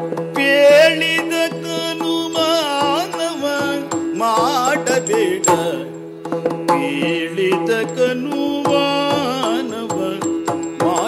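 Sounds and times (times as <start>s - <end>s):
person singing long gliding notes: 0.0s - 11.0s.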